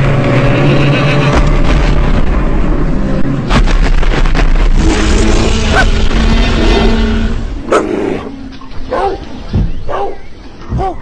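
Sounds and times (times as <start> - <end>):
cartoon stampede rumble: 0.0 - 8.5.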